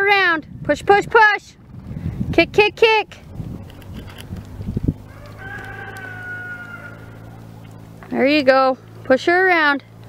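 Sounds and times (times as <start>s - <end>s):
rooster crowing: 5.0s - 7.4s.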